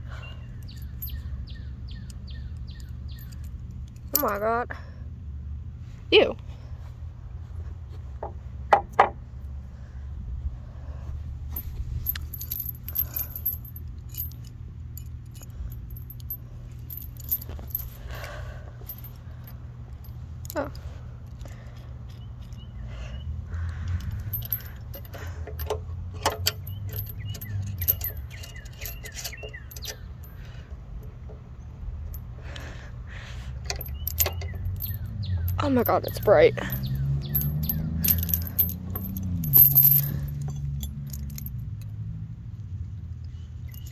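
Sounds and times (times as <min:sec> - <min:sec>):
metal chain and carabiner clinking: 0:00.0 - 0:04.8, 0:11.4 - 0:22.8, 0:23.7 - 0:32.8, 0:33.4 - 0:43.9.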